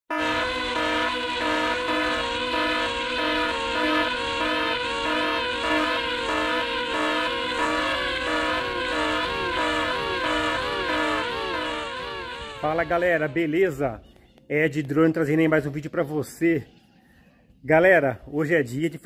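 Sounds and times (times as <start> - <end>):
drone propellers whining: 0.1 - 13.8.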